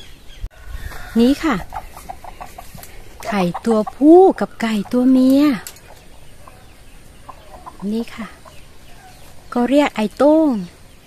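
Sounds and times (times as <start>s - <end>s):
chickens clucking: 0.6s - 9.8s
woman speaking: 1.1s - 1.8s, 3.2s - 5.7s, 7.5s - 8.5s, 9.5s - 10.8s.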